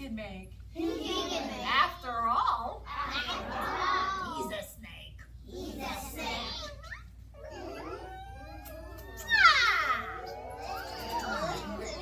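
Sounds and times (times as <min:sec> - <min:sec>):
young children's high voices: 0:05.5 - 0:12.0.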